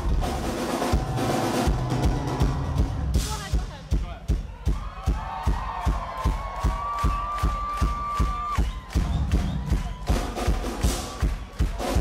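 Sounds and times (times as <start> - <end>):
kick drum beat: 1.0 - 12.0.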